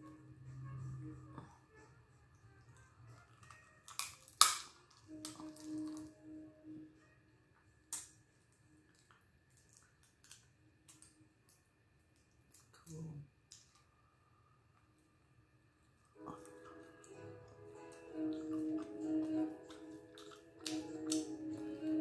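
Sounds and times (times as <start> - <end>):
crab shell cracking: 3.4 - 5.7.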